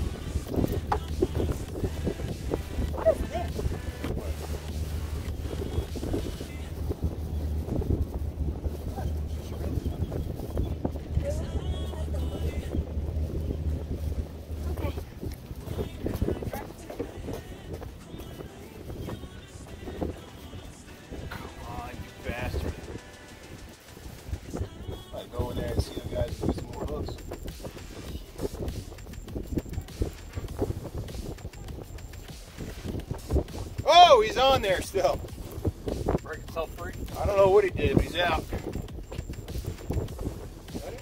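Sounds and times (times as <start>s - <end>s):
indistinct background voices: 0.0s - 29.0s
background music: 0.0s - 41.0s.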